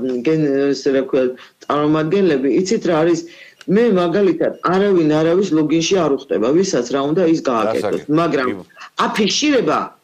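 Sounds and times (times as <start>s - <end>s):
woman speaking: 3.8s - 9.8s.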